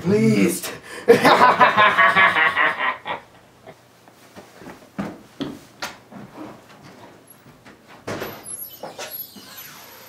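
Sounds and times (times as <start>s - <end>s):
man laughing evilly: 0.9s - 3.4s.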